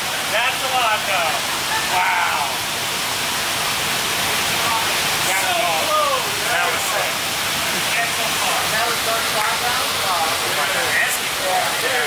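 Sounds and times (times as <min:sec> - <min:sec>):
voices talking: 0:00.2 - 0:02.9, 0:04.0 - 0:12.0.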